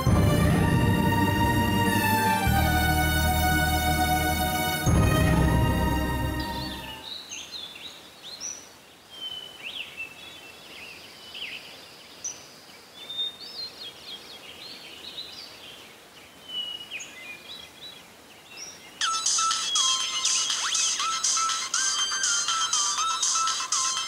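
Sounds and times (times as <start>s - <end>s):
birds chirping: 19.0s - 24.0s.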